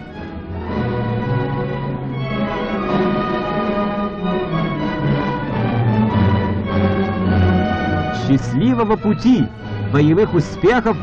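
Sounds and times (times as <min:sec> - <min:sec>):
orchestral held chords: 0:00.0 - 0:11.0.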